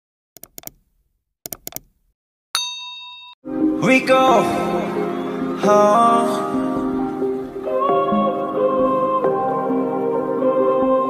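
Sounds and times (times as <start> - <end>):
sharp clicks: 0.4 - 0.9, 1.5 - 2.1
bell-like ding: 2.6 - 3.4
pop song with singing: 3.7 - 11.0.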